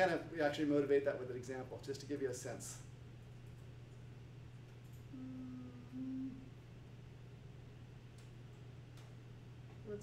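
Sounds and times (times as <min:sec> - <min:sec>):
low background hum: 0:00.0 - 0:10.0
person humming two notes: 0:05.1 - 0:06.5.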